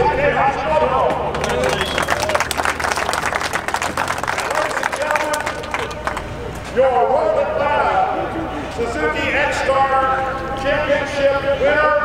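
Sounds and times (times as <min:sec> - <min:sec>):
crowd applauding: 0:01.0 - 0:06.5.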